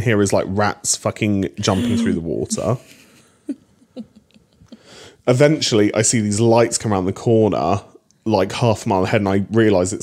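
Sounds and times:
person making breathy vocal sounds: 0:01.6 - 0:02.8.

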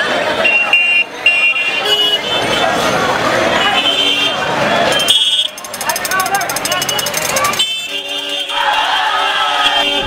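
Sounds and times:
people's voices: 0:00.0 - 0:10.0
street traffic: 0:00.0 - 0:10.0
vehicle horn toot: 0:03.7 - 0:05.6, 0:06.6 - 0:10.0.

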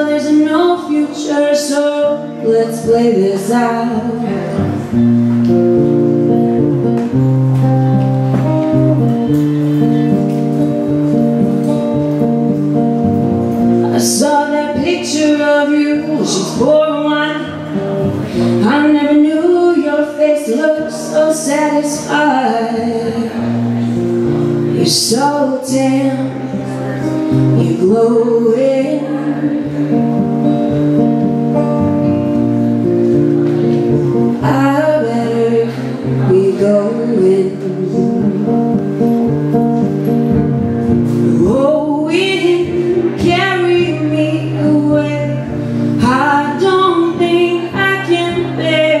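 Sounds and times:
acoustic guitar playing chords: 0:00.0 - 0:49.0.

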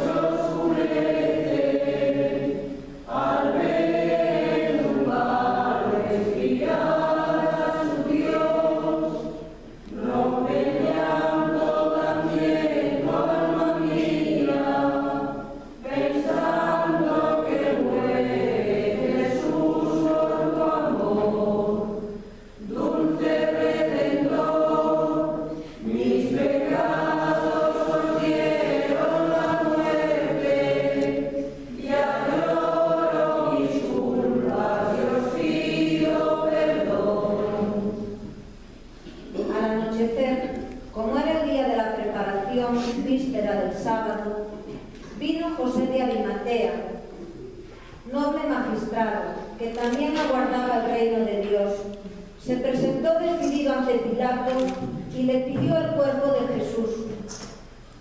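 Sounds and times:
choir singing: 0:00.0 - 0:38.3.

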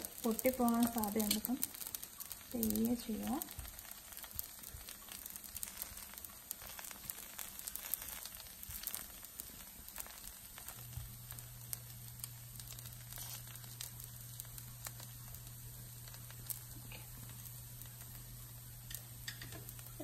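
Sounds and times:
food sizzling on a hot pan: 0:00.0 - 0:20.0
low steady hum: 0:00.0 - 0:20.0.

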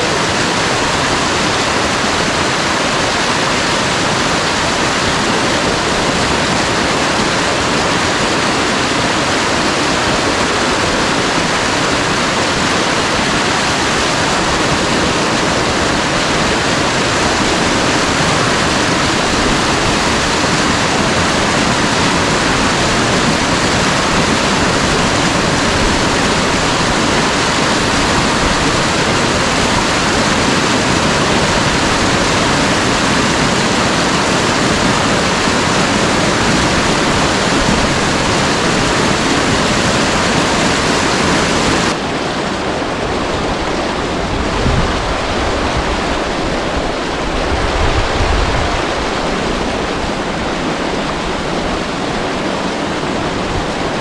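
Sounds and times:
water rushing down waterfall: 0:00.0 - 0:54.0.

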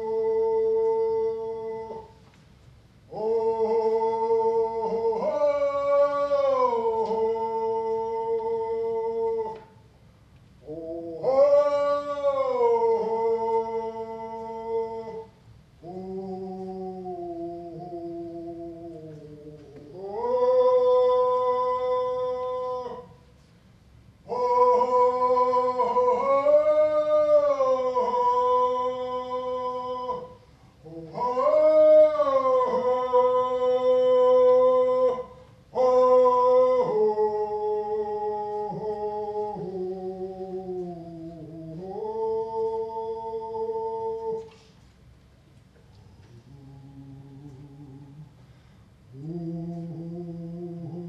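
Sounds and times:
man chanting held notes: 0:00.0 - 0:02.2, 0:03.1 - 0:09.8, 0:10.6 - 0:23.3, 0:24.2 - 0:44.8, 0:45.9 - 0:48.4, 0:49.1 - 0:51.0.

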